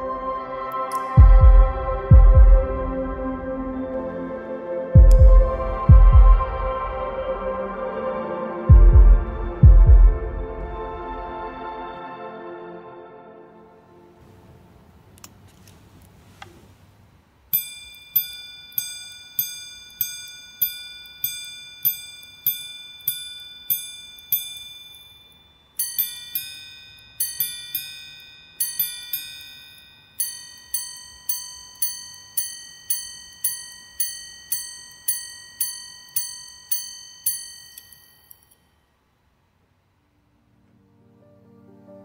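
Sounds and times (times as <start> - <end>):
pocket watch chiming on gongs: 0.9 - 1.4, 17.5 - 38.9.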